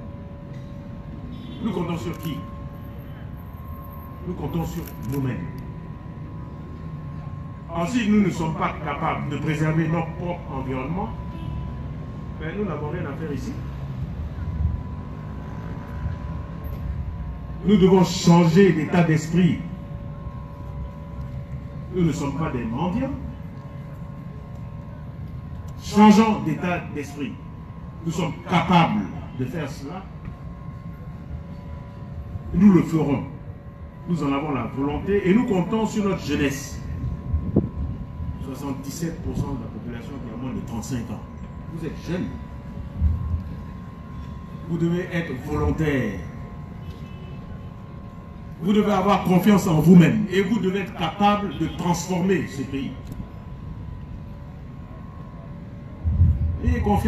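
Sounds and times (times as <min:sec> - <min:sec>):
faint steady hum: 0:00.0 - 0:57.0
low outdoor rumble: 0:00.0 - 0:57.0.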